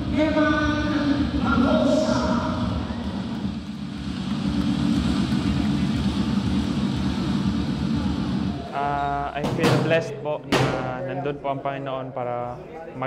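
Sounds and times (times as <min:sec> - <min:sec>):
crowd rumble in arena: 0:00.0 - 0:11.0.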